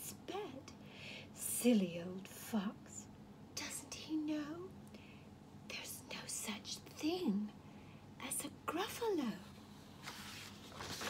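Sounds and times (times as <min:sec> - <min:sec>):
woman whispering: 0:00.0 - 0:04.8, 0:05.7 - 0:07.6, 0:08.2 - 0:09.5.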